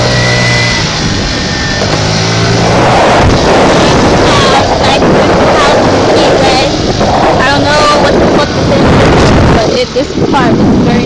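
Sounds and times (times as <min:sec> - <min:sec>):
wind and road noise on microphone: 0:00.0 - 0:11.0.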